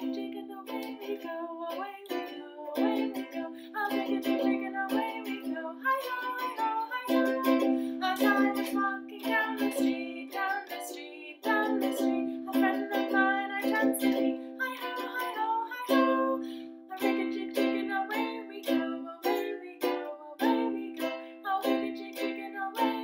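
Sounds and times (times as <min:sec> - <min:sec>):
ukulele strummed: 0:00.0 - 0:23.0.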